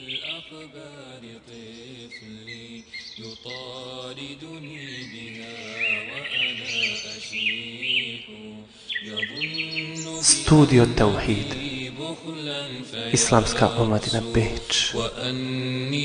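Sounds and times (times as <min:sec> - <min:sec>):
birds chirping: 0:00.0 - 0:15.1
wordless humming chant: 0:00.0 - 0:16.0.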